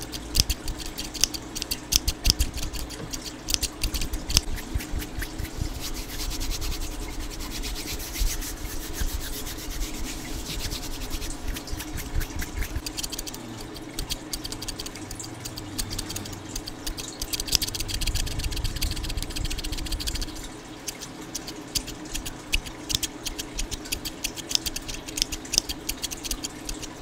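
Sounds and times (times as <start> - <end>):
hands rubbing on microphone: 4.0 - 13.3
small scissors against microphone: 10.6 - 20.3, 20.9 - 27.0.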